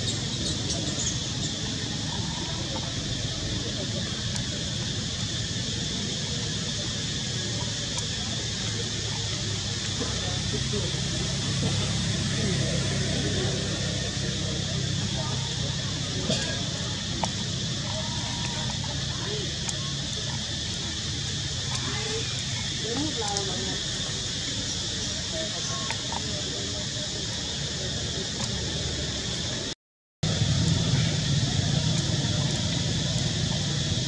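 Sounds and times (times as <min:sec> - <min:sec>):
indistinct voices: 0:00.0 - 0:34.0.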